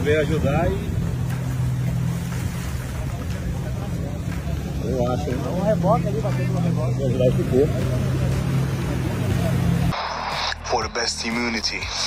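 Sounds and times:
vehicle engine running: 0:00.0 - 0:10.4
rushing water: 0:00.0 - 0:12.0
wind: 0:00.0 - 0:12.0.

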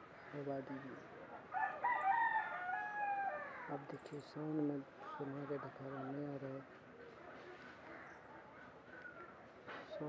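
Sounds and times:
rooster crowing: 0:01.6 - 0:03.6.

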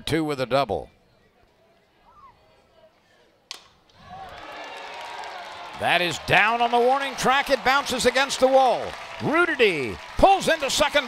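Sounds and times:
crowd cheering: 0:03.9 - 0:11.0.

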